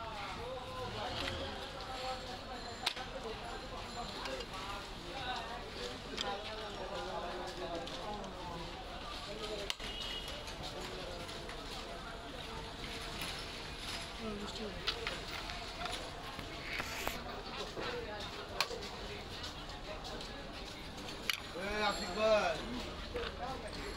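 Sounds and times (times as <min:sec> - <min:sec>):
background chatter: 0:00.0 - 0:23.9
street noise: 0:00.0 - 0:23.9.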